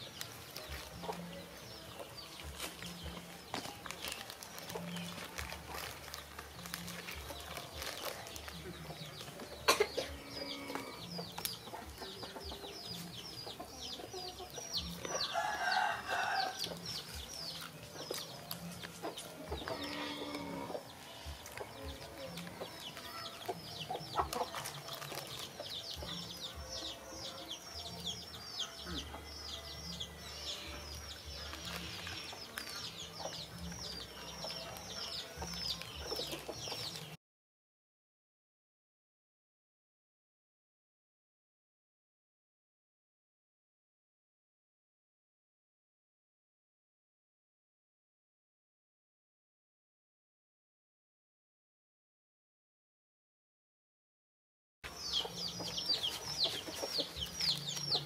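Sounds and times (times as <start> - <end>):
birds chirping rapidly: 0.0 - 37.2, 54.9 - 58.0.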